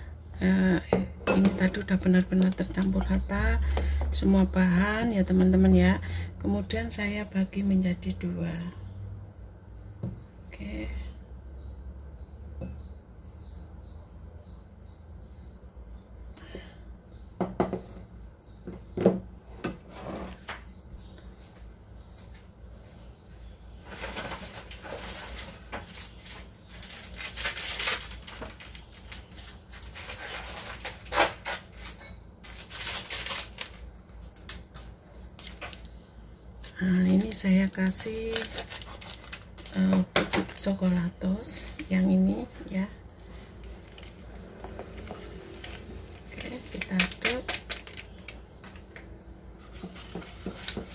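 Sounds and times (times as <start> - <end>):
rustling: 23.8 - 35.8.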